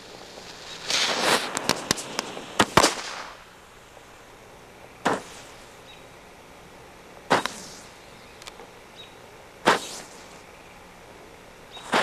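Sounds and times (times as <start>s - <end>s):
firecracker bangs: 0.0s - 3.5s, 7.3s - 7.9s, 9.6s - 10.3s
firecracker fizzing: 0.0s - 3.8s, 7.3s - 8.0s, 9.6s - 10.4s.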